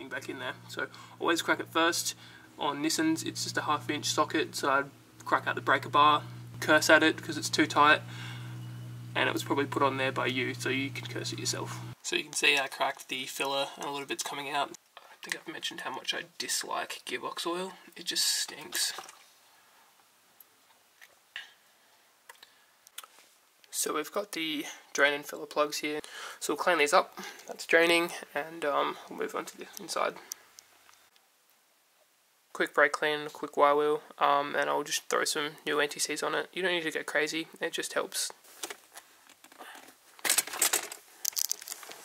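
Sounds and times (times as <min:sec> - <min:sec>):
low steady hiss: 0:00.0 - 0:42.0
plastic trim crinkling and clicking: 0:38.6 - 0:42.0.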